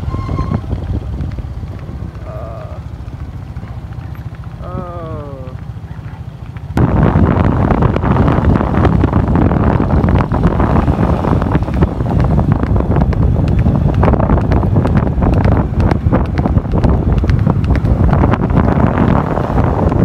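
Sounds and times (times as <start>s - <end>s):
heavy wind buffeting microphone: 0.0s - 20.0s.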